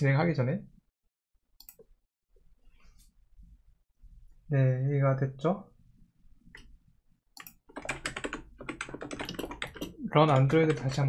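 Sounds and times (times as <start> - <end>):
fast typing on keyboard: 7.4 - 11.0.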